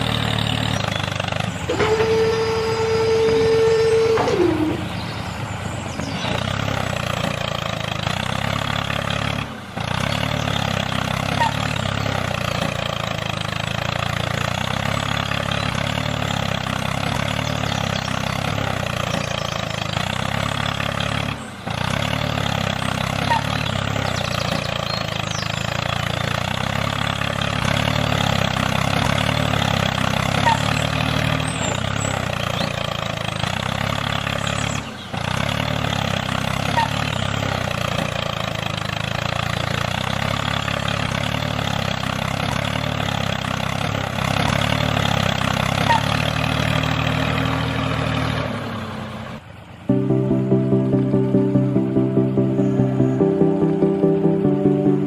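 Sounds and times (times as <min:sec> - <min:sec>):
engine running steadily: 0:00.0 - 0:55.0.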